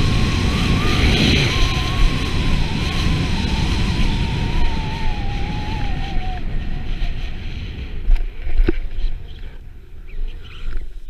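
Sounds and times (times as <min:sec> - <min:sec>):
thin wavering whistle: 0:00.0 - 0:07.4
wind rushing over microphone: 0:00.0 - 0:11.0.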